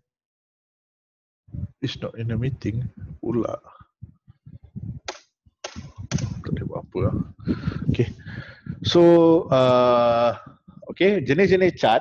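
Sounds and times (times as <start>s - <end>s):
man speaking into a microphone: 1.6s - 3.8s, 6.0s - 12.0s.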